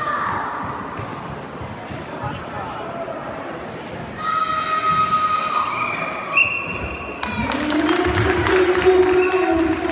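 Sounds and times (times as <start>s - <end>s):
spectators clapping and cheering: 7.1s - 9.9s.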